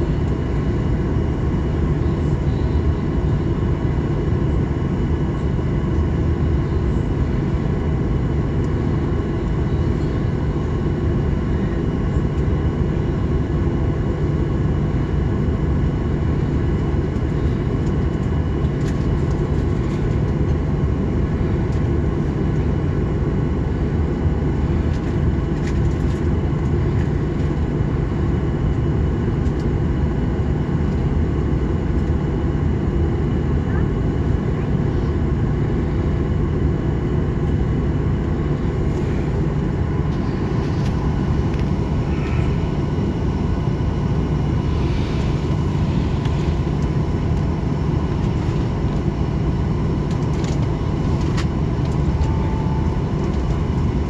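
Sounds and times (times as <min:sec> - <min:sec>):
airplane cabin engine hum: 0:00.0 - 0:54.0.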